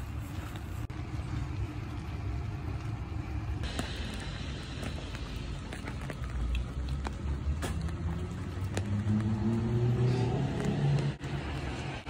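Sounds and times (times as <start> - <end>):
rain hissing on wet pavement: 0.0 - 12.0
steady low rumble: 0.0 - 12.0.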